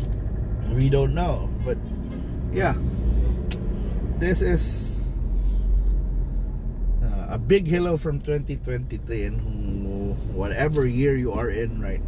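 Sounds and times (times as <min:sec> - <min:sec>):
car engine hum: 0:00.0 - 0:12.0
road noise rumble: 0:00.0 - 0:12.0.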